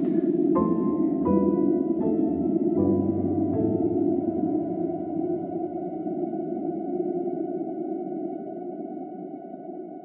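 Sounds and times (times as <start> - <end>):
sustained synthesizer drone: 0.0 - 10.0.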